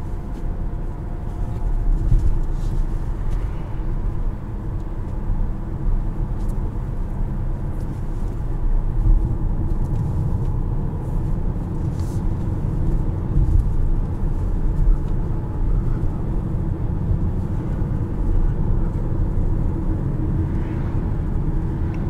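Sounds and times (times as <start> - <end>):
car tyres and engine rumble: 0.0 - 22.0.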